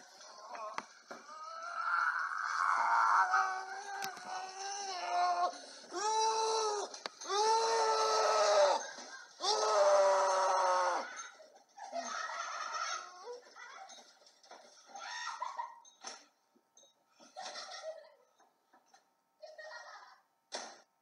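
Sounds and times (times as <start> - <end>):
person screaming: 1.3 - 8.8, 9.4 - 11.1.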